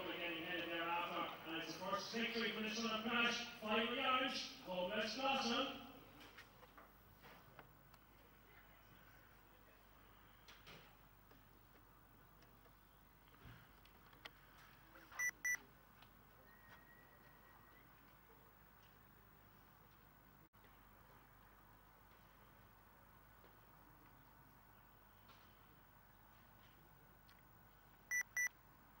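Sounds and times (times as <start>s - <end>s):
faint steady background hum: 0.0s - 29.0s
short electronic beeps: 15.2s - 15.6s, 28.1s - 28.5s
faint steady high tone: 16.4s - 18.0s.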